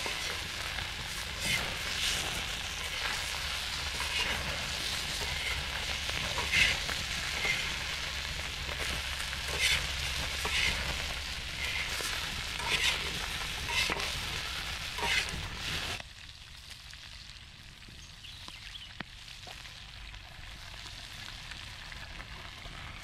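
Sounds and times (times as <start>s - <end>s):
shrimp sizzling in a pan: 0.0s - 23.0s
spatula and knife scraping pan: 1.3s - 7.8s, 9.5s - 15.5s.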